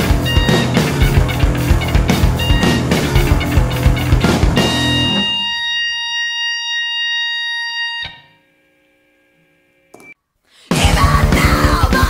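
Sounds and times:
high electric guitar tone: 0:00.0 - 0:10.2.

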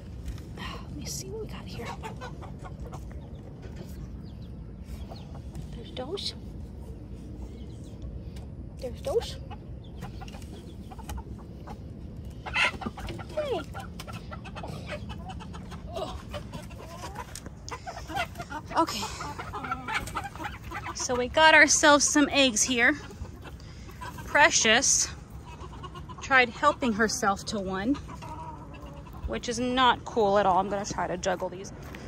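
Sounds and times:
chickens clucking: 0:00.0 - 0:32.0.

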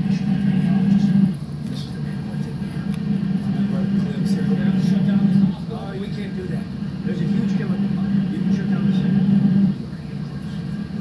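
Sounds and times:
indistinct voices: 0:00.0 - 0:11.0
steady low hum: 0:00.0 - 0:11.0.

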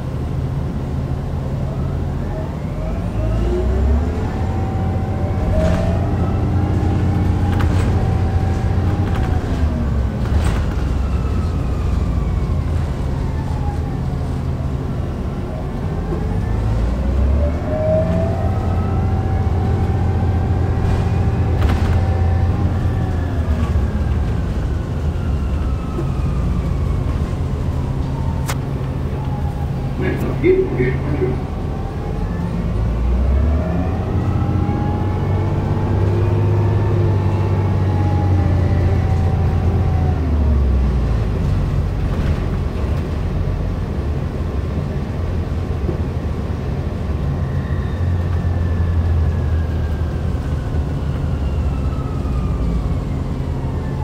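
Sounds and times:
diesel engine low hum: 0:00.0 - 0:54.0
electric bus drive whining: 0:00.0 - 0:54.0.

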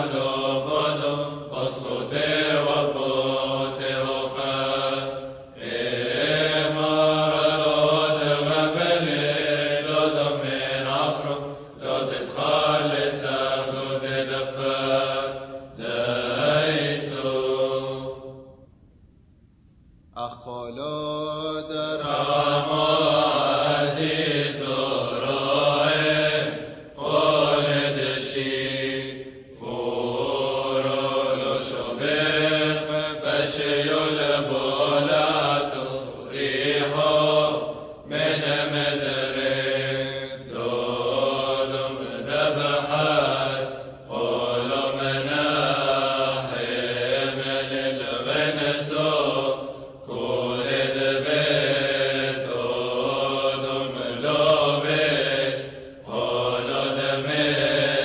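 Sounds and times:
men chanting a hymn: 0:00.0 - 0:18.4, 0:20.2 - 0:58.0.

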